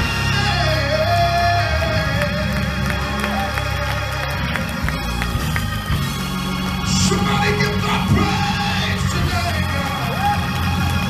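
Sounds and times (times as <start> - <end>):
live gospel band music: 0.0 - 11.0.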